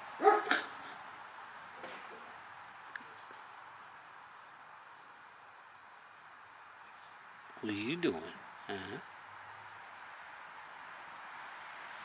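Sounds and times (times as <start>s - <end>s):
dog barking: 0.2s - 0.7s.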